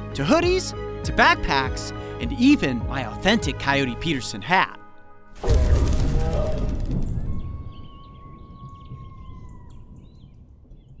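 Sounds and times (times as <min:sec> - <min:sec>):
birds chirping: 0:06.2 - 0:11.0
steady whistled tone: 0:07.0 - 0:09.4.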